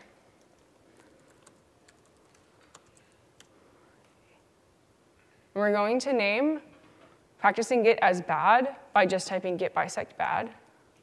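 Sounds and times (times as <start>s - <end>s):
laptop keyboard typing: 0.4s - 3.5s.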